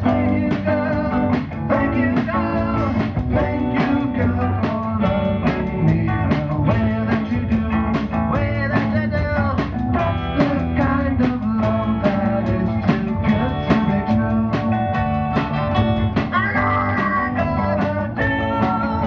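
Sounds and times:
person singing: 0.0s - 15.1s, 16.2s - 19.0s
drum kit beat: 0.0s - 19.0s
guitar: 0.0s - 19.0s.

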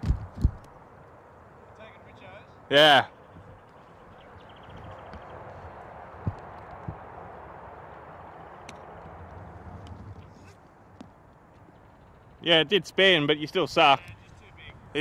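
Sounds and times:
outdoor background noise: 0.0s - 15.0s
soft low thumps: 6.1s - 7.3s.

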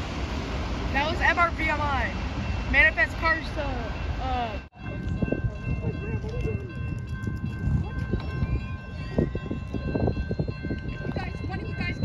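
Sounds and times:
level crossing bell ringing: 1.8s - 12.0s
wind buffeting microphone: 4.5s - 12.0s.

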